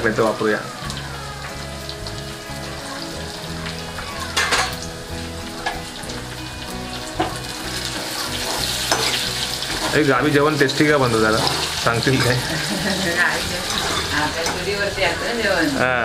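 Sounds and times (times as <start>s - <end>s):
onions sizzling in hot oil: 0.0s - 16.0s.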